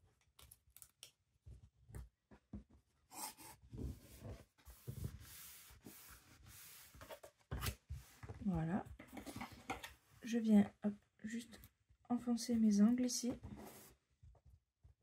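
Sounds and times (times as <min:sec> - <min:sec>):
rubbing on paper: 0:04.6 - 0:07.2.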